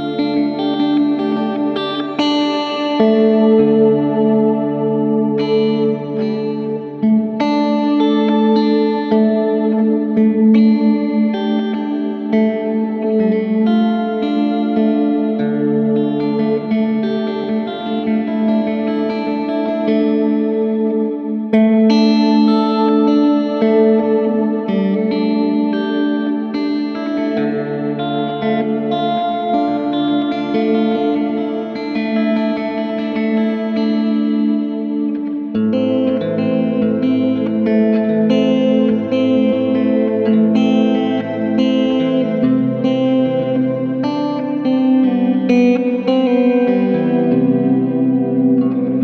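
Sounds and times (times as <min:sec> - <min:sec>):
electric guitar chords with reverb: 0:00.0 - 0:49.0.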